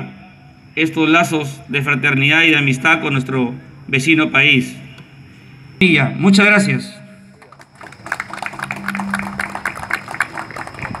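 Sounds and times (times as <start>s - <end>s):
people clapping: 7.3s - 11.0s.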